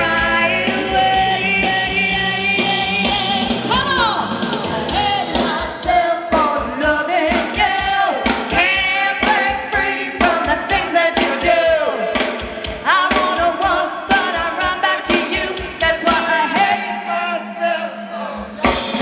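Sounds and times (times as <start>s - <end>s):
bass guitar: 0.0s - 12.8s
electric guitar: 0.0s - 17.2s
drums: 0.0s - 19.0s
person singing: 0.0s - 19.0s.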